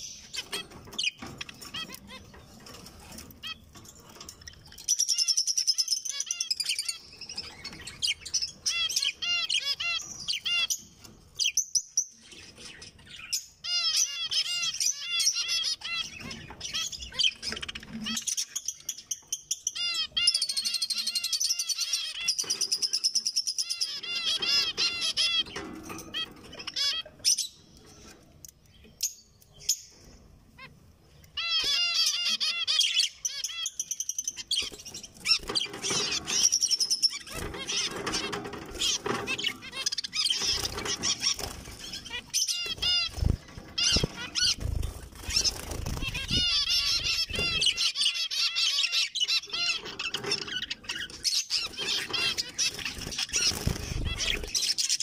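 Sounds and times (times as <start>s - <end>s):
finches singing: 0.0s - 55.0s.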